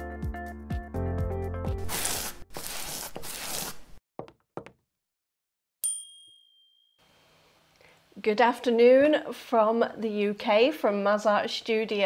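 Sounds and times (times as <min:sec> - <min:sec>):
bright ding: 0:05.8 - 0:07.2.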